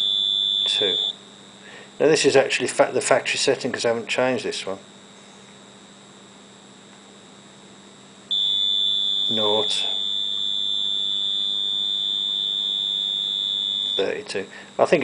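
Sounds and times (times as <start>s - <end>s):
high-pitched buzzer tone: 0.0s - 1.2s, 8.3s - 14.4s.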